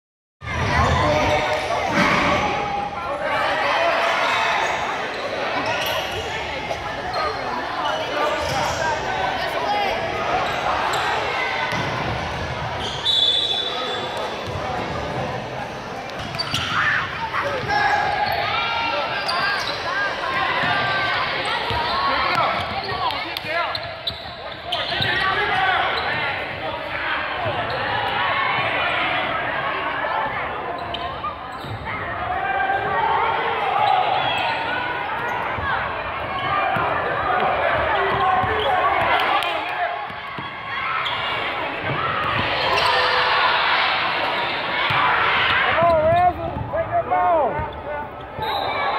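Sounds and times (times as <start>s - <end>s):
high whistle: 12.9s - 14.0s, 48.4s - 48.9s.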